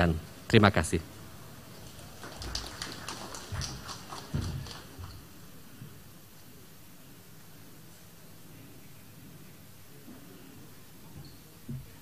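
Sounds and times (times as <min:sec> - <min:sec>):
thin applause: 0:01.6 - 0:05.4.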